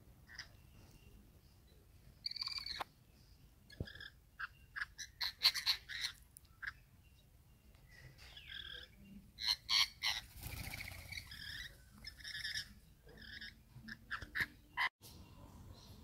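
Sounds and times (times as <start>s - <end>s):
lorikeets screeching and chattering: 2.2s - 2.8s, 3.7s - 6.9s, 8.2s - 14.9s.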